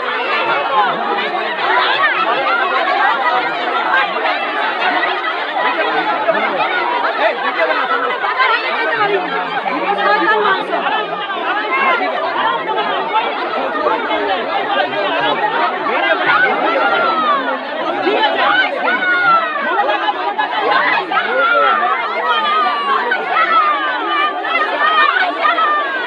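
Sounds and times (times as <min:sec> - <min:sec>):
crowd talking: 0:00.0 - 0:26.0.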